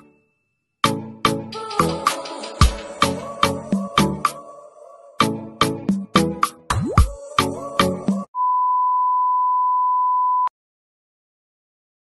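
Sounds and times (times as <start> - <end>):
upbeat intro music: 0.8 - 8.3
steady electronic beep: 8.4 - 10.5.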